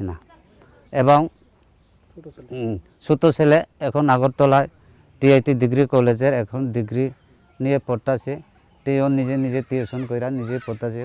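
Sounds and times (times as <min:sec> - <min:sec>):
cricket trill: 0:00.0 - 0:11.0
man speaking: 0:02.2 - 0:11.0.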